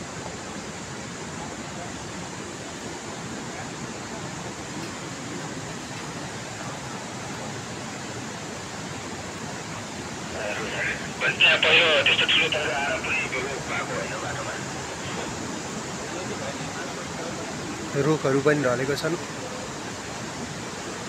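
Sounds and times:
steady rushing noise: 0.0s - 21.0s.

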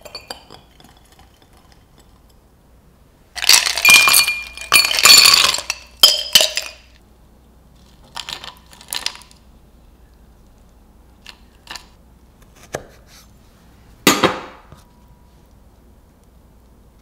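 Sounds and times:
ice cubes clinking against glass: 3.4s - 7.0s.

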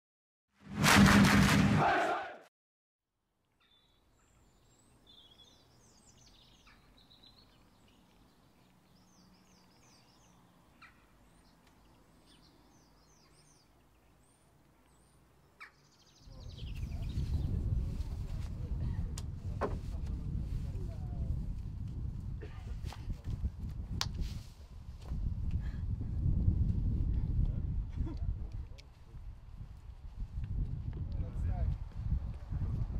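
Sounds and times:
loud intro sound effect: 0.6s - 2.3s
outdoor ambience: 3.2s - 32.9s
songbirds chirping: 3.4s - 17.7s.

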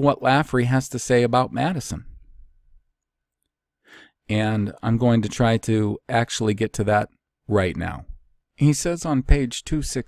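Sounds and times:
man speaking: 0.0s - 2.2s, 4.3s - 10.0s
man breathing in: 3.8s - 4.2s.

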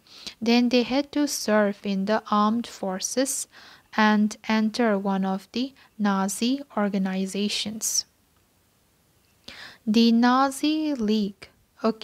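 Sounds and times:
woman reading aloud: 0.4s - 8.1s, 9.9s - 12.0s
short breath: 3.5s - 3.9s, 9.4s - 9.9s.

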